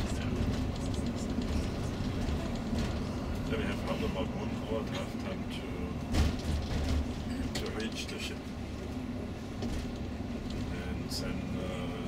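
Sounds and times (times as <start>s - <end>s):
bus engine and road drone: 0.0s - 12.0s
indistinct passenger voices: 0.0s - 12.0s.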